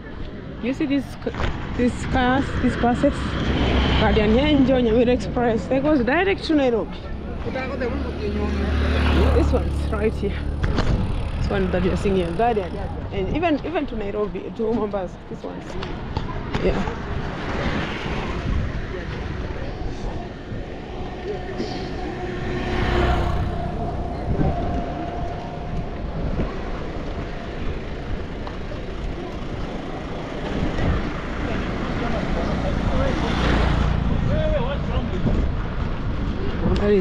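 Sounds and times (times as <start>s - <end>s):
indistinct voices: 0.0s - 35.6s
traffic rumble: 0.0s - 37.0s
vehicles passing: 0.0s - 37.0s.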